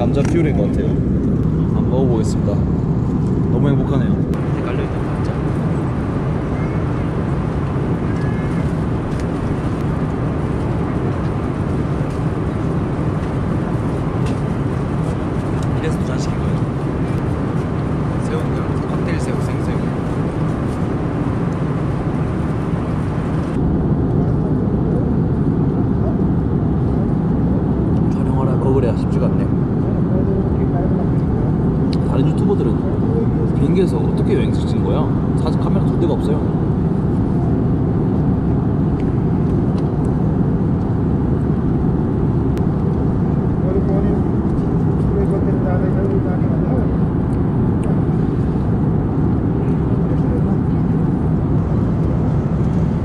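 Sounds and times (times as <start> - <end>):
jet airliner cabin roar: 0.0 - 53.0.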